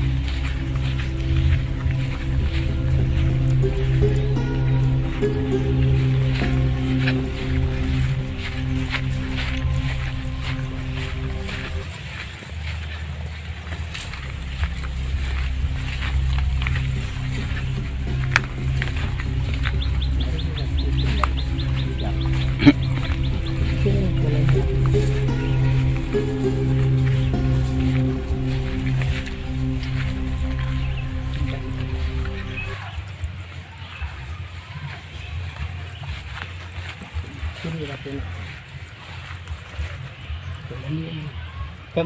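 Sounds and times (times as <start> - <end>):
low rumble: 0.0 - 12.4, 13.8 - 33.5
steady low hum: 0.0 - 12.6, 14.0 - 33.1
background music: 0.0 - 40.0
footsteps through rice plants: 0.0 - 41.9.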